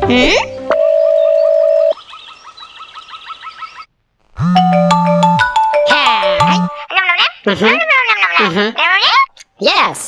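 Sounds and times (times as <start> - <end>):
chirpy trill: 4.4 - 6.9
tune with held notes: 4.4 - 6.9.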